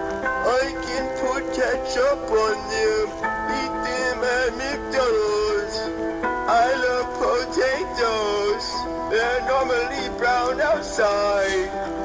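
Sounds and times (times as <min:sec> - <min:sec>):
steady held chords: 0:00.0 - 0:12.0
person singing comic song: 0:00.4 - 0:05.9, 0:06.5 - 0:11.9.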